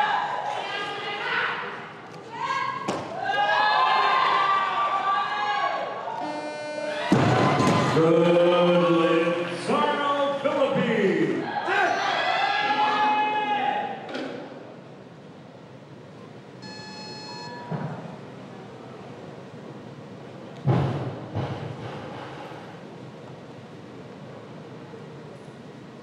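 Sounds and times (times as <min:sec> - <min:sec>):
crowd noise burst: 0:00.0 - 0:26.0
electronic signal tone: 0:06.2 - 0:07.1, 0:16.6 - 0:17.7.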